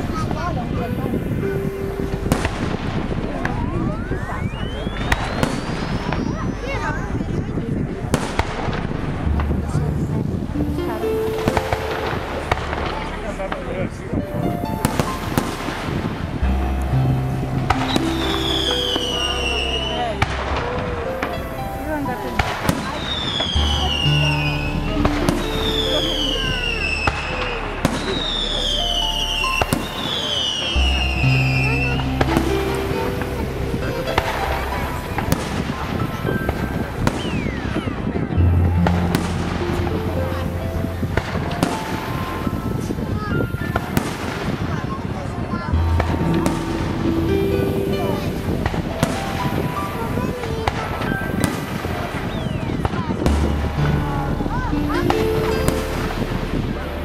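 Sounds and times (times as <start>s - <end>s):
fireworks bangs: 0.0s - 57.0s
high falling whistles: 3.9s - 7.0s, 23.0s - 31.9s
loud music: 8.1s - 43.3s, 45.6s - 51.8s, 53.3s - 57.0s.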